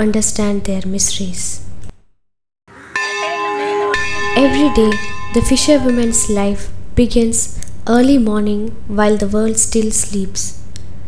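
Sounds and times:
church bells ringing: 2.7s - 6.6s.

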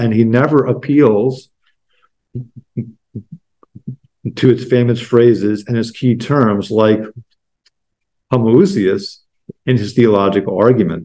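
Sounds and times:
soft low thumps: 2.4s - 4.4s.

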